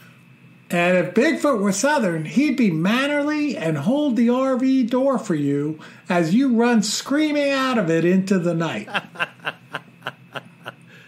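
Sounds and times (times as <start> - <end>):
man chuckling: 8.9 - 11.0.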